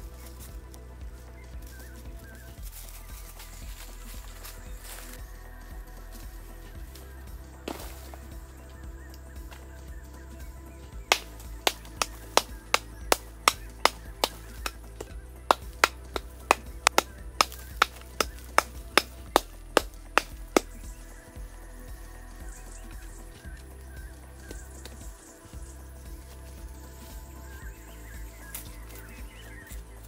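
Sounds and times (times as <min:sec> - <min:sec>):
background music: 0:00.0 - 0:30.0
metal hoe striking stony ground: 0:07.6 - 0:08.4, 0:11.0 - 0:21.0.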